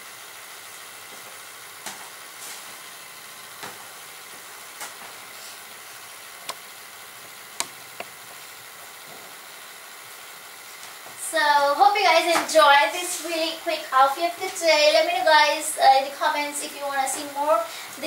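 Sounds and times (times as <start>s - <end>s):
steady hiss: 0.0s - 18.0s.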